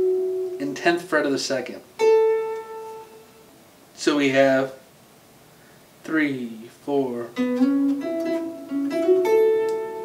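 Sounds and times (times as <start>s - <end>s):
electric guitar note ringing: 0.0s - 0.7s.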